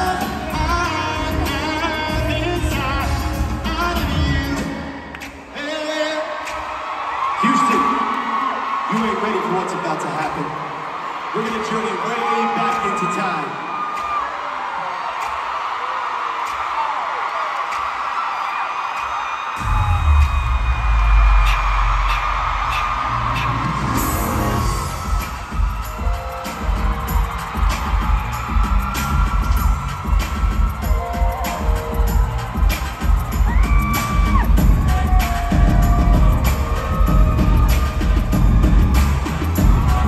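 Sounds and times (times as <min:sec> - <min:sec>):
pop dance track with drum beat: 0:00.0 - 0:10.5, 0:17.6 - 0:40.0
crowd screaming and cheering: 0:00.0 - 0:40.0.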